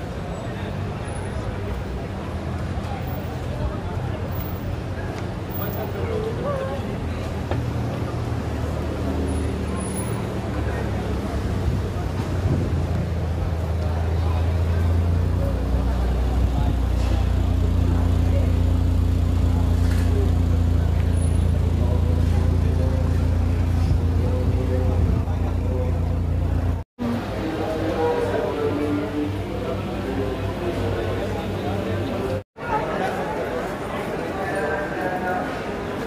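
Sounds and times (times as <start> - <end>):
street noise: 0.0 - 36.0
voices chattering: 0.0 - 36.0
vehicle engine running: 6.8 - 28.2.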